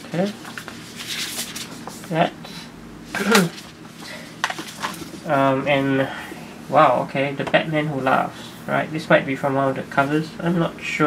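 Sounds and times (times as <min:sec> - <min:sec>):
paper dust jacket rustling: 0:00.0 - 0:02.1, 0:03.2 - 0:05.3.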